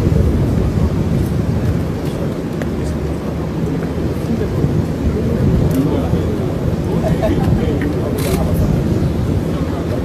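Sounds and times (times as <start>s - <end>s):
faint voices: 0.0s - 10.0s
low rumble of engine and wind: 0.0s - 10.0s.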